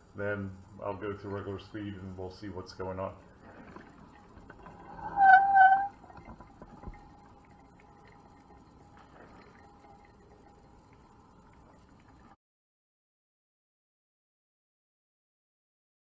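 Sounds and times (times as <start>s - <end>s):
faint steady tone: 0.0s - 12.4s
coffee maker gurgling: 0.1s - 12.4s.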